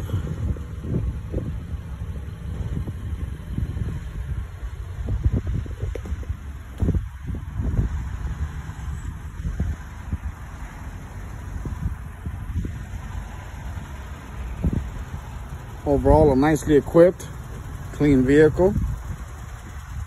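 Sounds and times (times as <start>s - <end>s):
wind rumbling on microphone: 0.0s - 20.0s.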